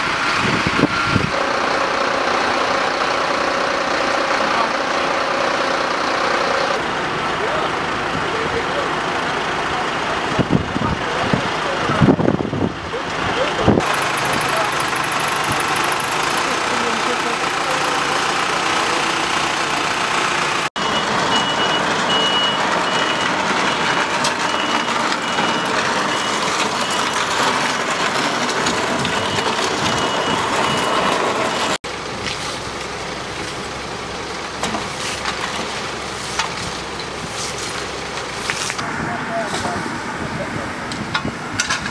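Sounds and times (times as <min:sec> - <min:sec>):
heavy vehicle engines running: 0:00.0 - 0:41.9
reversing alarm beeping: 0:20.7 - 0:31.8.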